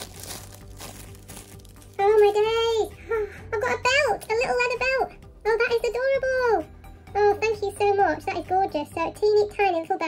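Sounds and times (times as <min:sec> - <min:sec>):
tissue paper crinkling: 0:00.0 - 0:02.8.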